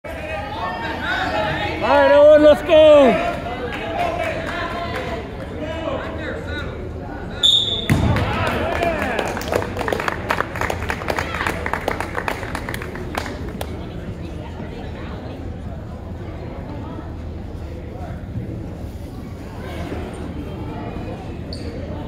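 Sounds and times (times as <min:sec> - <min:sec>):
spectators talking and calling out: 0:00.1 - 0:09.4
short high whistle blast: 0:07.4 - 0:08.0
thud: 0:07.8 - 0:08.3.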